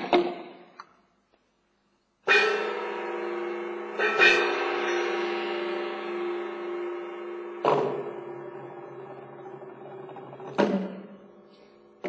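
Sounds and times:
large gong ringing: 2.3 - 9.5.

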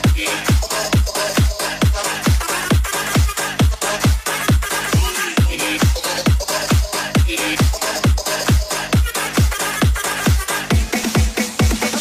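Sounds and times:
booming kick drum: 0.0 - 12.0
disco dance music: 0.0 - 12.0.

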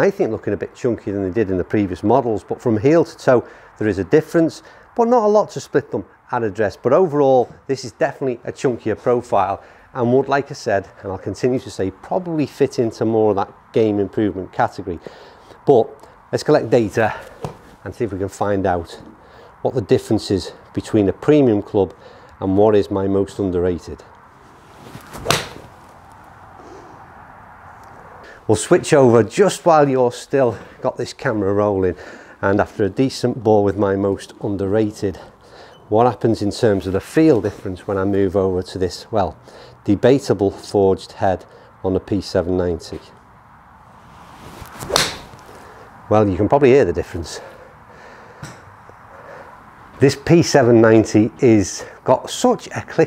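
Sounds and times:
golf club swish: 24.5 - 26.1, 43.9 - 45.8
golf club striking ball: 25.2 - 25.7, 44.4 - 45.6.

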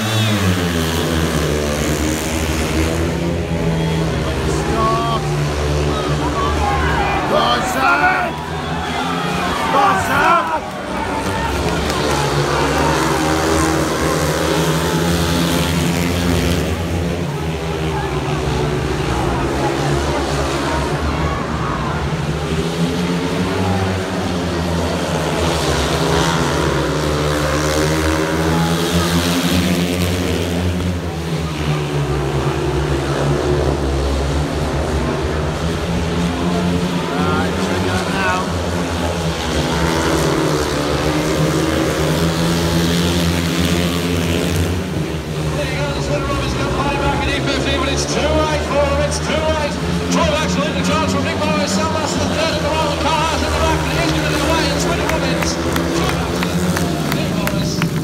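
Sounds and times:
motorcycle engines racing: 0.0 - 58.0.

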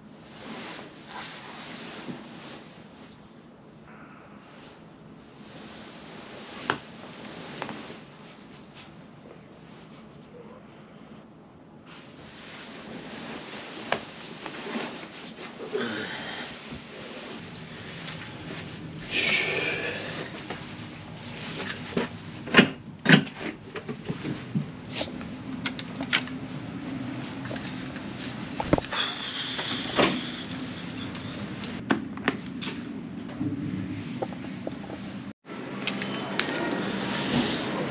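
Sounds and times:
rustling and handling noises: 5.4 - 10.3, 11.8 - 15.7.

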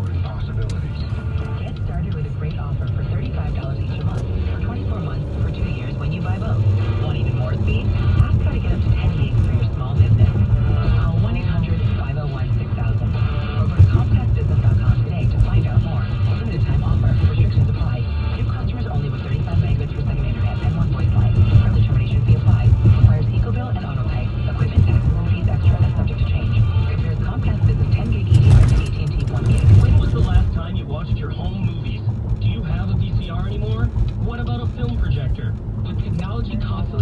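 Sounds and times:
car road and engine rumble: 0.0 - 37.0
music on car radio: 0.0 - 37.0
voice on car radio: 0.0 - 37.0.

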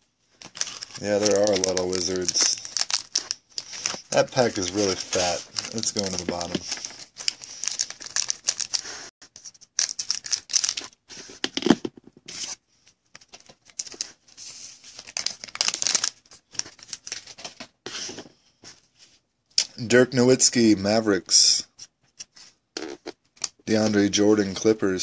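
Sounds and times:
wrapper crinkling: 0.3 - 11.0, 13.2 - 14.2, 14.9 - 17.6
cards rubbing and sliding: 0.4 - 12.6.

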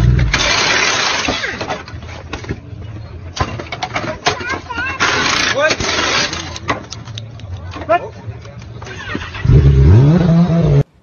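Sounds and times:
pneumatic wheel gun: 0.2 - 1.8.

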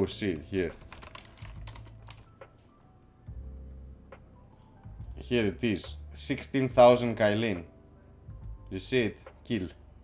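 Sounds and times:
computer keyboard typing: 0.6 - 2.4.

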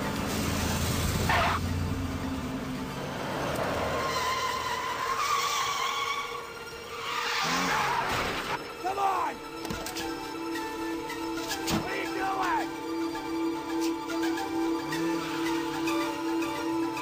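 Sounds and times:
car tyres squealing: 0.0 - 1.8, 3.0 - 8.6
low car engine: 0.0 - 7.1.

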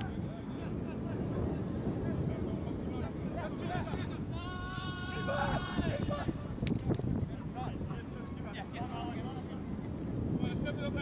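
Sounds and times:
wind rumble on microphone: 0.0 - 11.0
person shouting a long call: 4.4 - 6.4.

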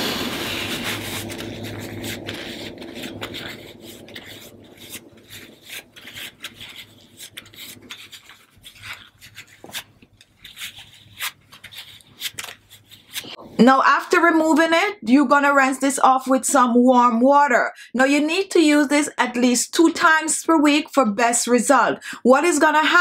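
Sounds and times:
cloth wiping strokes: 0.0 - 11.9
wet cloth rubbing skin: 0.0 - 13.4.

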